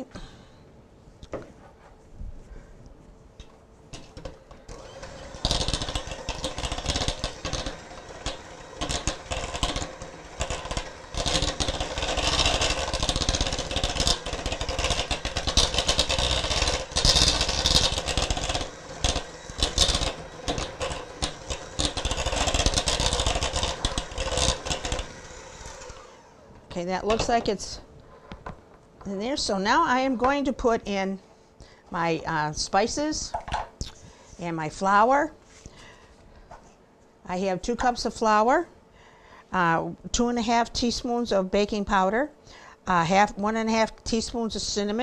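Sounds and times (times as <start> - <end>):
electric hand mixer running: 4.7 - 26.5.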